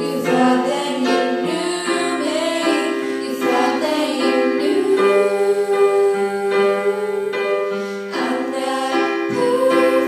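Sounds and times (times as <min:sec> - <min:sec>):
electric keyboard chords: 0:00.0 - 0:10.0
girls singing a pop ballad: 0:00.0 - 0:10.0.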